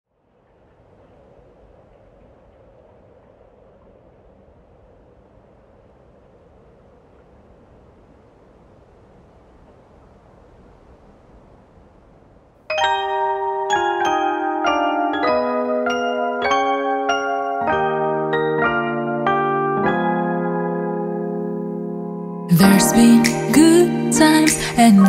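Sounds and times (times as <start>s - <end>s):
steady rumble and hiss: 0.2s - 12.6s.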